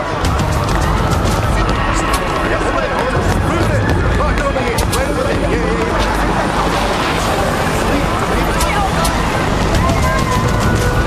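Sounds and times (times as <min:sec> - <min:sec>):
indistinct voices: 0:00.0 - 0:11.0
street traffic: 0:00.0 - 0:11.0.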